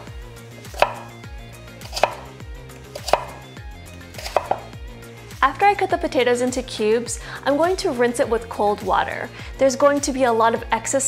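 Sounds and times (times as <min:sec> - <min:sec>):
knife slicing potato on board: 0:00.0 - 0:04.8.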